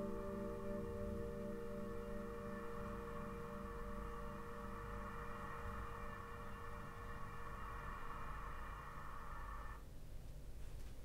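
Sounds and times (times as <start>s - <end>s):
held music chord over loudspeakers: 0.0s - 8.2s
low room rumble: 0.0s - 11.0s.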